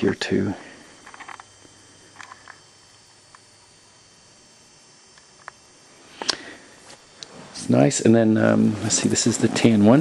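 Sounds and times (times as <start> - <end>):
faint room hiss: 0.0 - 10.0
jacket rustling and crinkling: 8.4 - 10.0.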